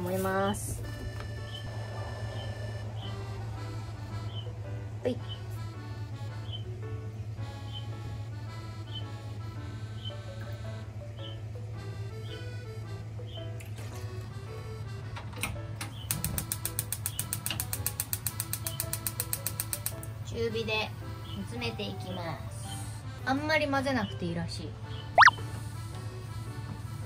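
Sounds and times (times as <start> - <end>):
gas stove igniter clicking: 15.4 - 20.1.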